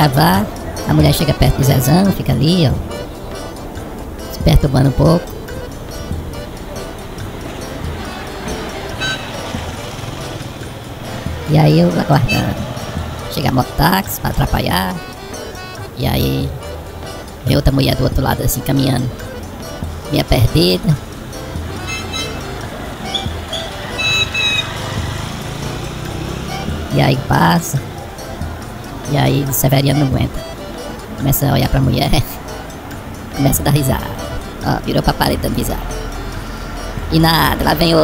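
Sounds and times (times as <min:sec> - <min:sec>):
background music: 0:00.0 - 0:38.0
street noise: 0:00.0 - 0:38.0
motorcycle engine approaching: 0:05.4 - 0:14.1, 0:19.2 - 0:29.4
motorcycle engine idling: 0:21.0 - 0:27.2.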